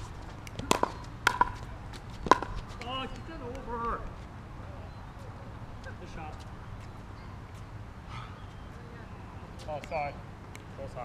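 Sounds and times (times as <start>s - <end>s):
tennis ball struck by racket: 0.5s - 2.9s
tennis ball bouncing on hard court: 0.5s - 3.7s.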